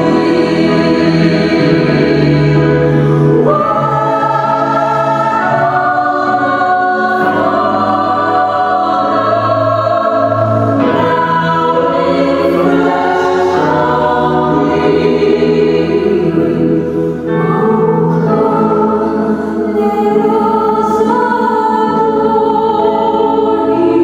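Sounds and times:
vocal trio singing in harmony: 0.0 - 24.0.

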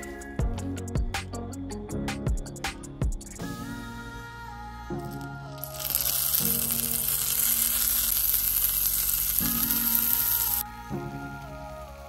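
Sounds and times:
soft background music: 0.0 - 12.0
cherries sizzling in a frying pan: 5.6 - 10.6.

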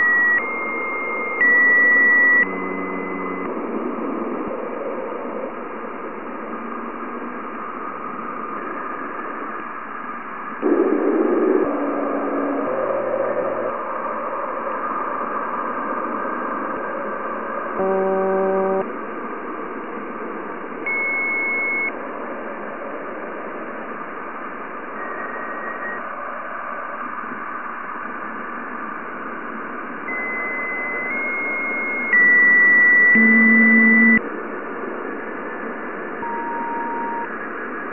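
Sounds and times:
brief pure tones: 0.0 - 3.6, 17.8 - 18.9, 20.9 - 21.9, 25.0 - 26.0, 30.1 - 34.2, 36.2 - 37.3.

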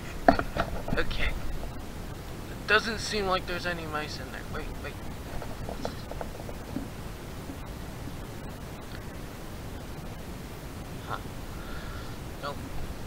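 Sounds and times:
faint rustles: 0.0 - 13.0
wind noise on microphone: 4.4 - 13.0.

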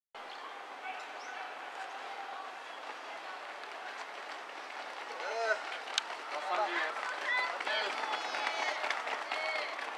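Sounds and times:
faint distant voices: 0.2 - 9.9.

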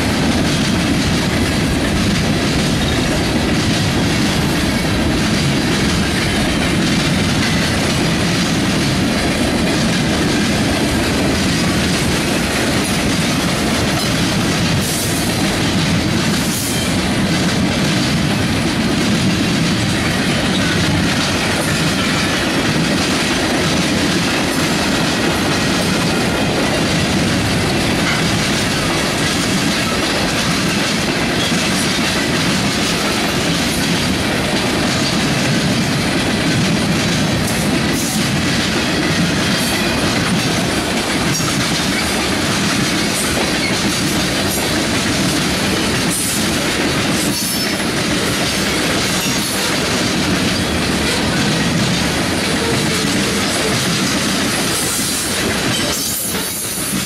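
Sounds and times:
freight train wheels clattering on rails: 0.0 - 57.0.

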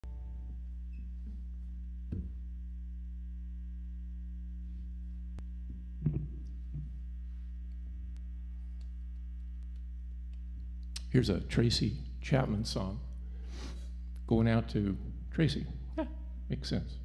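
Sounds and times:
electrical mains hum: 0.0 - 17.0
microphone handling bump: 2.1 - 2.4.

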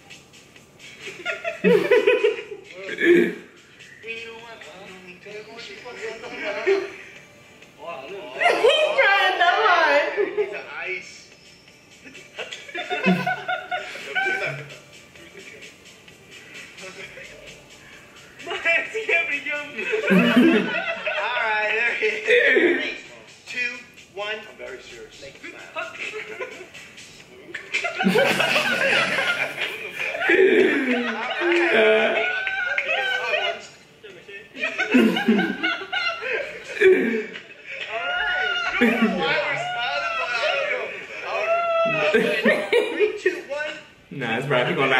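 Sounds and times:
faint background music: 0.0 - 44.9
people laughing: 0.8 - 3.4, 12.0 - 15.7, 18.4 - 23.0, 25.3 - 33.8, 34.4 - 43.6
men speaking and chuckling: 0.8 - 3.8, 12.0 - 23.4, 25.2 - 43.5.

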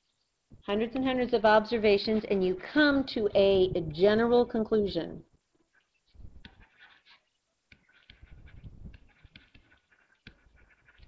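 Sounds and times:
stylus scratchy strokes: 5.7 - 11.0
stylus tapping on tablet screen: 7.7 - 11.0.

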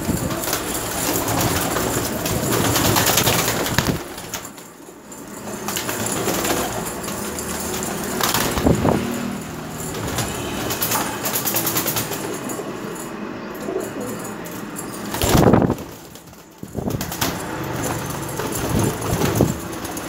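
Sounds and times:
pigeons cooing: 13.5 - 14.4.

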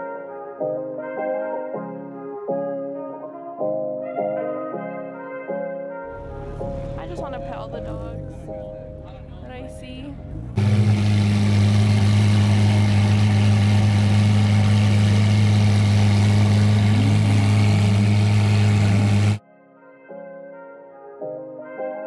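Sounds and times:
background music with horns: 0.0 - 22.0
car engine idling: 6.1 - 19.4.

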